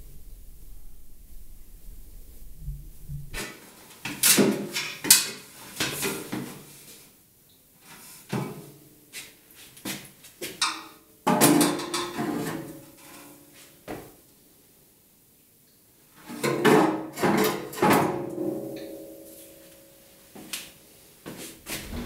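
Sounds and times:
metal ladder clattering: 0:10.6 - 0:12.7.

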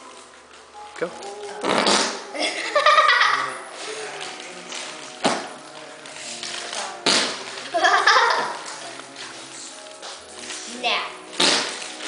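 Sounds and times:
whoopee cushion fart noise: 0:01.6 - 0:02.3, 0:07.0 - 0:07.5, 0:11.3 - 0:12.0
child laughing: 0:02.4 - 0:03.6, 0:07.7 - 0:08.6.

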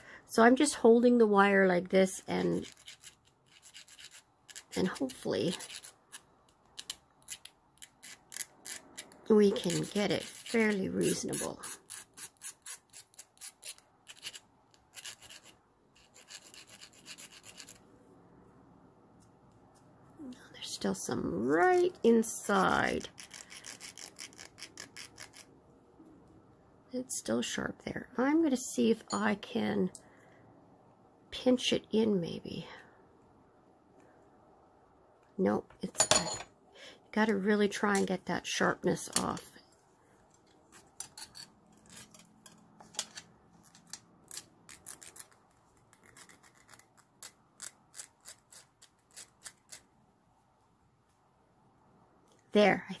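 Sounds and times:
hand file rasping on wire: 0:02.6 - 0:17.8, 0:22.8 - 0:25.5, 0:40.7 - 0:49.8.

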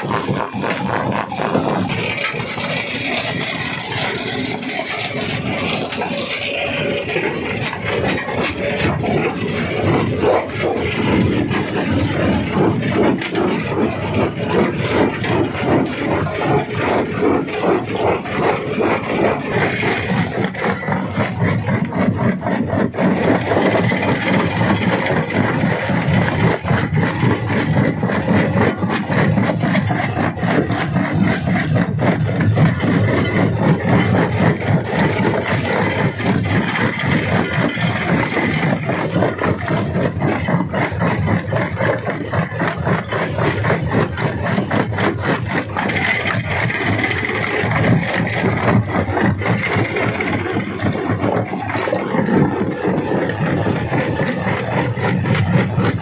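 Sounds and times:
rock crusher engine running: 0:00.0 - 0:56.0
rock clattering and rattling: 0:05.4 - 0:56.0.

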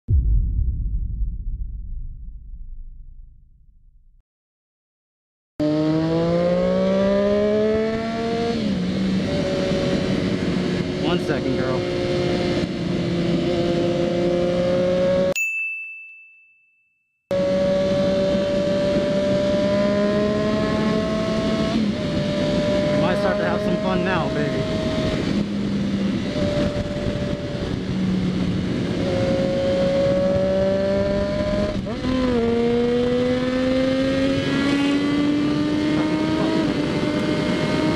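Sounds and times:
motorcycle engine revving and cruising: 0:05.6 - 0:15.4, 0:17.3 - 0:37.9
wind and road noise: 0:05.6 - 0:15.4, 0:17.3 - 0:37.9.

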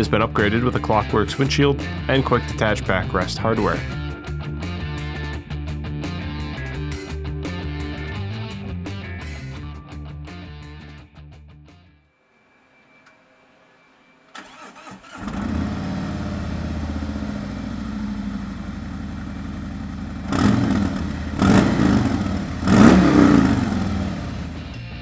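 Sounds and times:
motorcycle engine starting: 0:14.3 - 0:24.9
engine revving: 0:14.4 - 0:24.9
motorcycle engine idling: 0:15.2 - 0:24.8.

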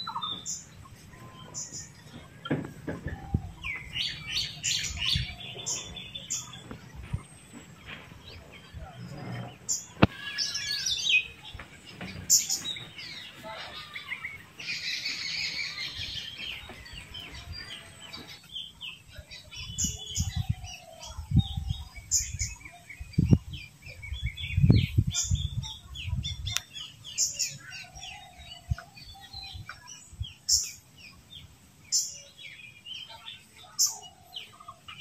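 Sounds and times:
birds chirping: 0:00.0 - 0:35.0.

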